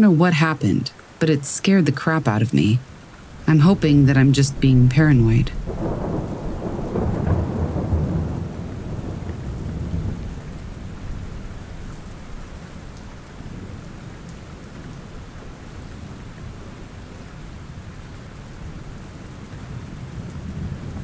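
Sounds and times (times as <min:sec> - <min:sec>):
steady rain: 0:00.0 - 0:21.0
low rumble of thunder: 0:03.2 - 0:21.0.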